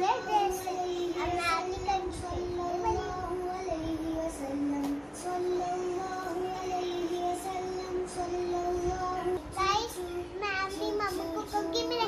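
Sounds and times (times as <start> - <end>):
child singing slow melody: 0.0 - 12.0.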